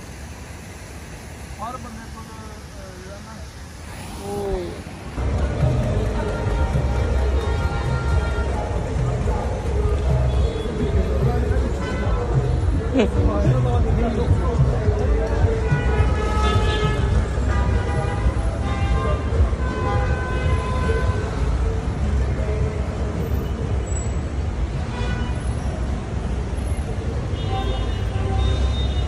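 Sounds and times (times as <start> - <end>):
rumble of passing cars: 0.0 - 29.0.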